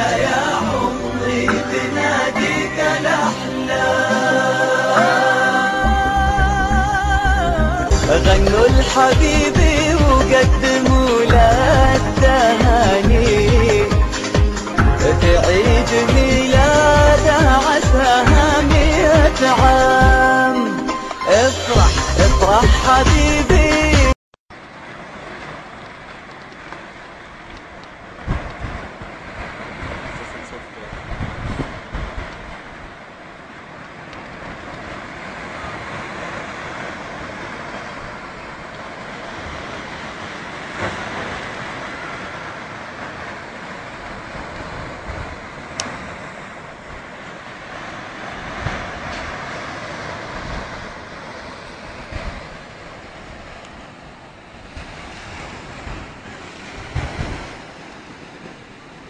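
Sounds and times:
waves washing ashore: 0:00.0 - 0:59.0
wind buffeting microphone: 0:24.8 - 0:59.0.

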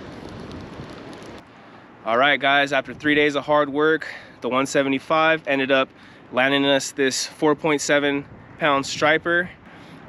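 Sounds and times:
wind hissing on microphone: 0:00.0 - 0:03.6, 0:05.7 - 0:10.0.

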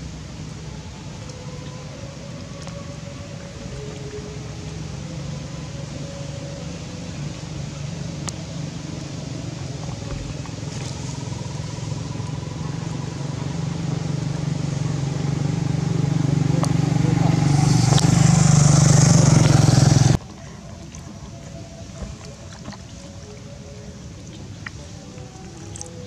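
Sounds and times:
vehicle engine hum: 0:00.0 - 0:26.0.

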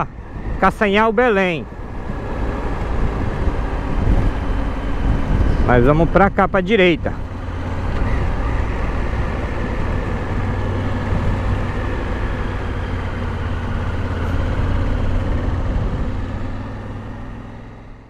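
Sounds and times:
wind rush on microphone: 0:00.0 - 0:16.8
motorcycle engine droning: 0:00.0 - 0:18.0.

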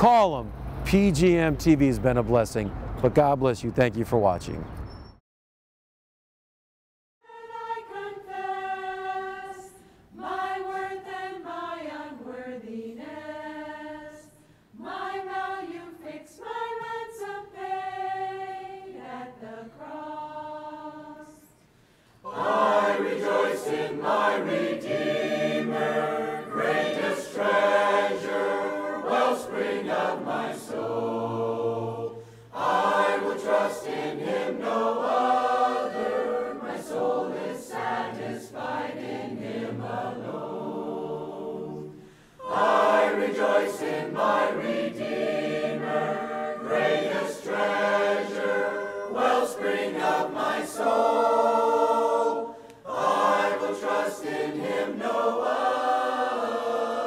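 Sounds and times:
choir singing a cappella: 0:07.2 - 0:57.0.

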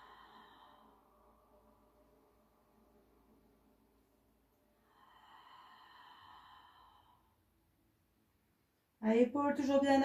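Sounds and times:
faint long exhale: 0:00.0 - 0:01.3, 0:04.8 - 0:07.4.

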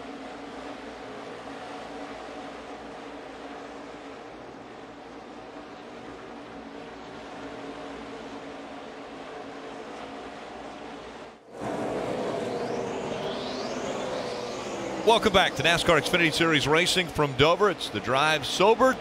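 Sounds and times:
race car engines passing: 0:11.5 - 0:19.0.

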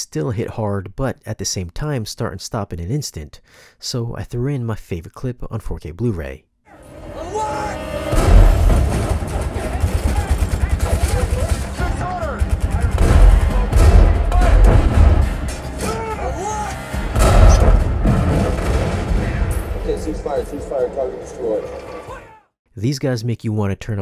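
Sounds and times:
soundtrack music: 0:06.7 - 0:22.3
heavy booms with deep bass: 0:08.1 - 0:10.0, 0:12.4 - 0:15.5, 0:17.1 - 0:19.9
rapid gunfire: 0:08.2 - 0:15.2.

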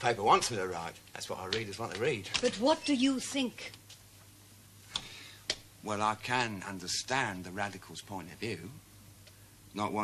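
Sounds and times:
man speaking: 0:00.0 - 0:02.4, 0:05.8 - 0:08.8, 0:09.7 - 0:10.0.

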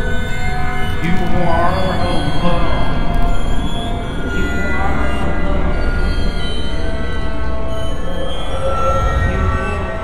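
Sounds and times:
dark ambient music drone: 0:00.0 - 0:10.0.

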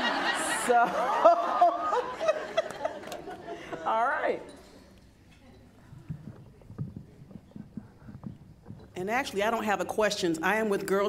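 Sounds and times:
soft knocks and thumps: 0:05.8 - 0:09.0.

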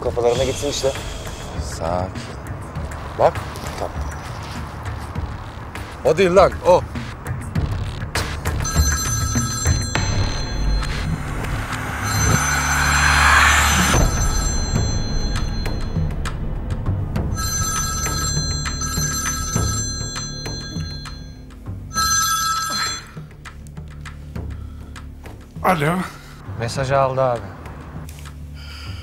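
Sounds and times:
mobile phone ringing: 0:08.5 - 0:16.0, 0:17.3 - 0:23.3
rising whoosh: 0:09.9 - 0:18.2.

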